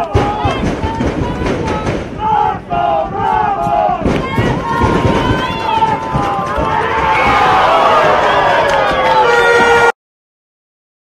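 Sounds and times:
crowd noise: 0.0s - 9.9s.

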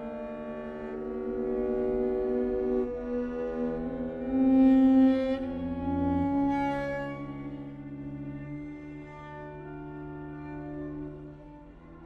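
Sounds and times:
string quartet sustained chord: 0.0s - 12.0s.

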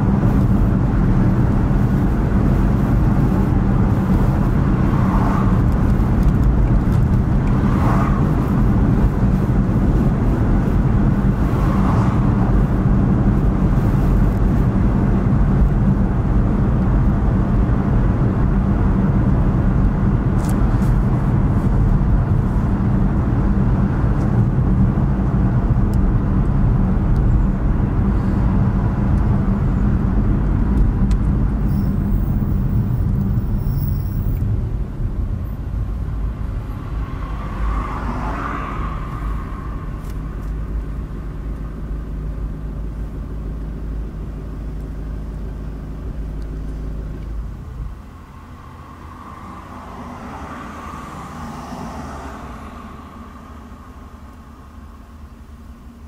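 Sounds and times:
car road and engine rumble: 0.0s - 56.0s.

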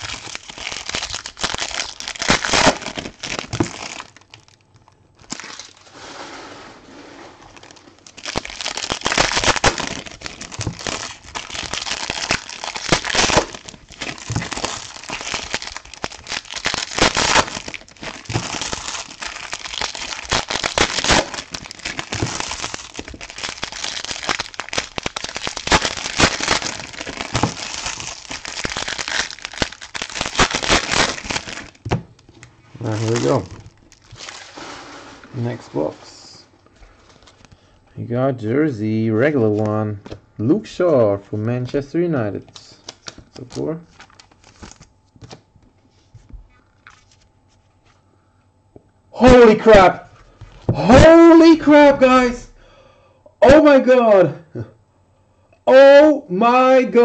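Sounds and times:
foil wrappers crinkling: 0.0s - 6.0s, 7.4s - 35.9s, 42.4s - 45.4s, 46.1s - 48.0s.

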